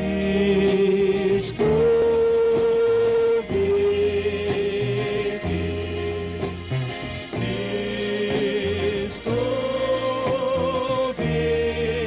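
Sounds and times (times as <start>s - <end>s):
church band worship music: 0.0s - 12.0s
steady bass line: 0.0s - 12.0s.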